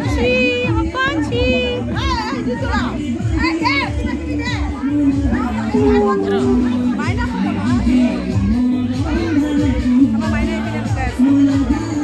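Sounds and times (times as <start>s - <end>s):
loud party music: 5.7s - 8.6s
women and children shouting: 5.8s - 7.2s.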